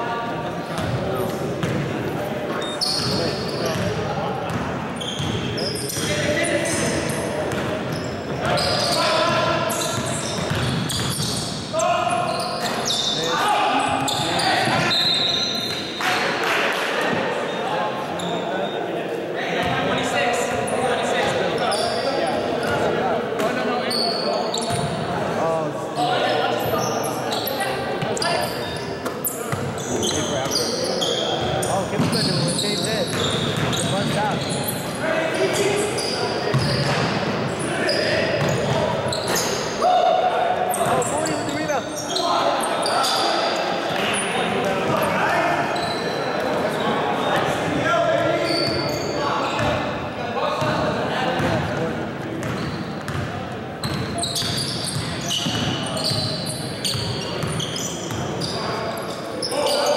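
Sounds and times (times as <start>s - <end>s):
sneaker squeaks: 0.7s - 1.8s, 2.5s - 16.2s, 17.4s - 18.9s, 19.6s - 25.1s, 26.0s - 59.9s
basketball bouncing on wooden court: 4.5s - 6.1s, 10.0s - 11.4s, 52.4s - 56.2s, 57.0s - 58.2s.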